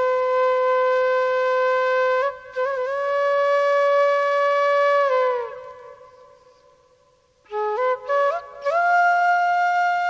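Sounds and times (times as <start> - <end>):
flute holding long note: 0.0 - 6.8, 7.5 - 10.0.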